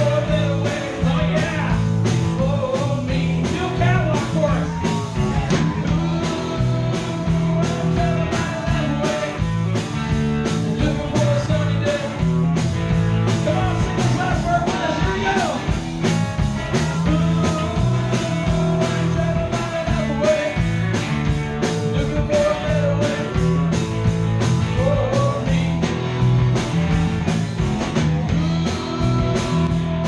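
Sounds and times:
bass guitar: 0.0s - 30.0s
drum kit beat: 0.0s - 30.0s
electric guitars: 0.0s - 30.0s.

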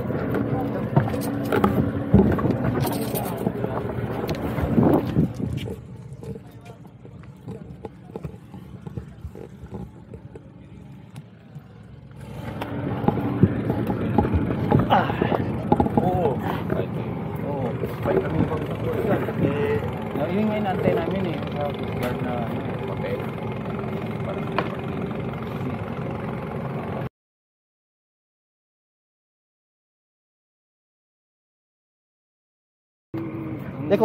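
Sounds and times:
boat engine running: 0.0s - 27.1s, 33.2s - 34.0s
men talking: 0.1s - 1.5s, 2.5s - 9.7s, 14.6s - 25.2s, 33.7s - 34.0s.

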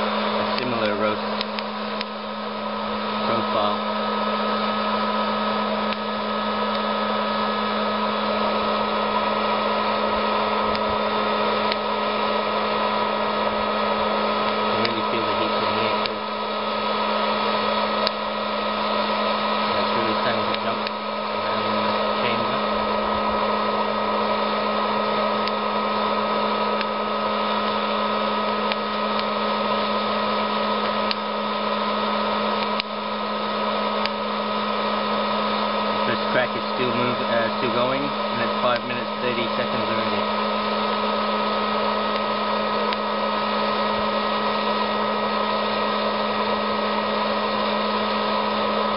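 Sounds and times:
popcorn popper fan whirring: 0.0s - 48.9s.

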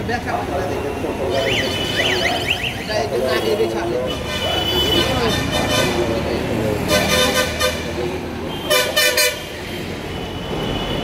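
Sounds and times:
traffic rumble: 0.0s - 11.0s
vehicle horn honking: 8.5s - 9.5s.

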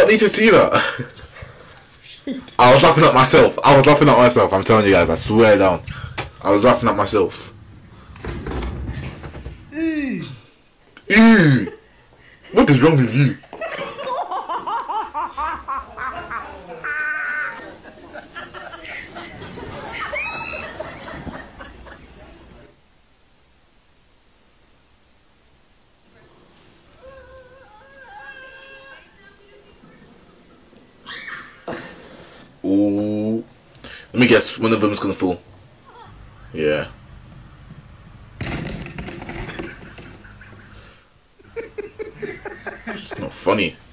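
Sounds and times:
noisy clatter: 4.6s - 9.8s, 37.3s - 40.8s
person laughing: 13.5s - 22.2s, 39.5s - 43.3s
whining voice cry: 15.9s - 17.9s, 26.2s - 32.0s.

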